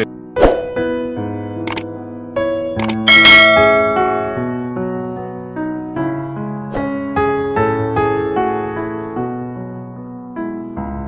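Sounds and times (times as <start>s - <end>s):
soft keyboard music: 0.0s - 11.0s
quick clicks: 2.8s - 3.0s
bright bell-like chime: 3.1s - 4.6s.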